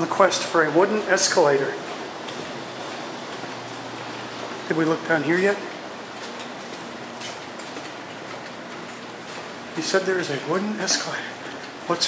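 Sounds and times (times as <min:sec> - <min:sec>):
footsteps on hard floor: 0:01.7 - 0:04.7, 0:05.7 - 0:09.7.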